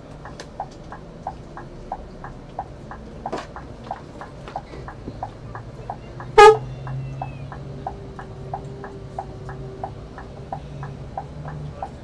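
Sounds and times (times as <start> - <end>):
coach engine hum: 0.0 - 12.0
turn signal ticking: 0.0 - 12.0
horn toot: 6.4 - 6.7.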